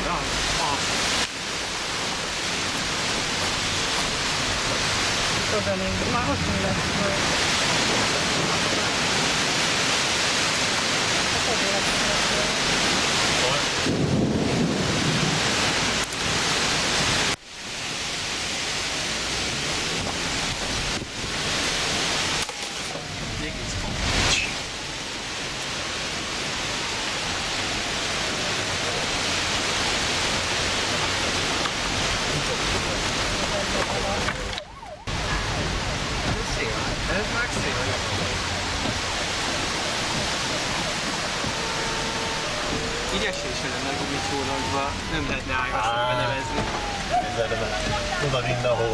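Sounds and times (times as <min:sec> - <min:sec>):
storm wind and rain: 0:00.0 - 0:48.9
wind buffeting microphone: 0:12.6 - 0:17.2, 0:29.2 - 0:48.9.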